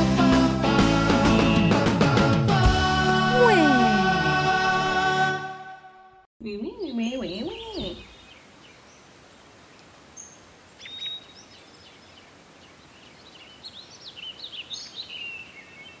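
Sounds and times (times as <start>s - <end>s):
birds chirping: 6.4s - 16.0s.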